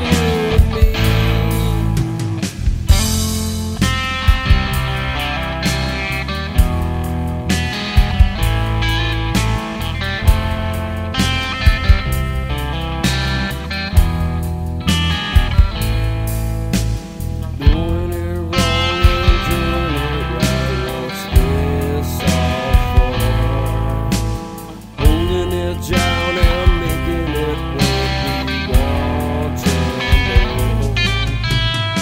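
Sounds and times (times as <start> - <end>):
bass line: 0.0 - 32.0
electric guitar sustained notes: 0.0 - 32.0
sharp regular drum beats: 0.0 - 32.0.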